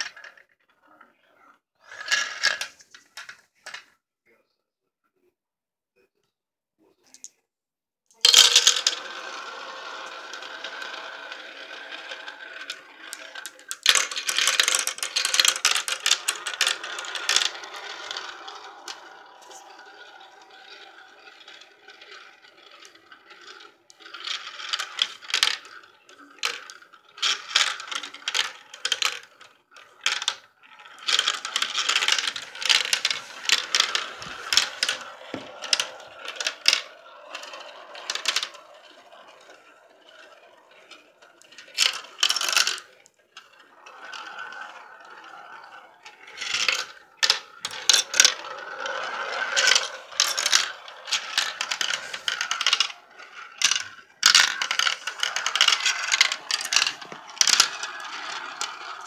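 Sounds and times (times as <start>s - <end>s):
marbles rolling rumble: 0.0s - 3.8s, 8.2s - 59.0s
marbles clattering and clicking: 8.2s - 59.0s.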